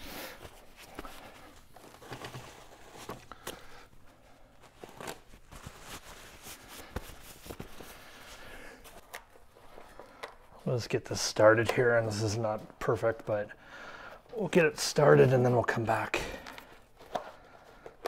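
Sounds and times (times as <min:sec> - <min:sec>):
handling clicks and rustles: 0:00.4 - 0:13.4.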